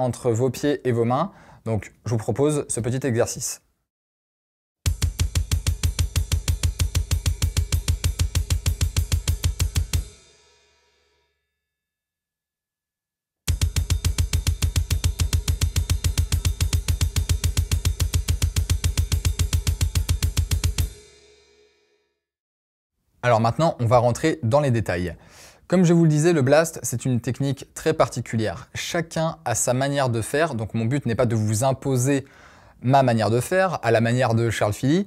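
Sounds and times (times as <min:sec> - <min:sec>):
drum kit blast beats: 0:04.8 - 0:10.6, 0:13.5 - 0:21.6
cymbals ringing: 0:13.5 - 0:21.7.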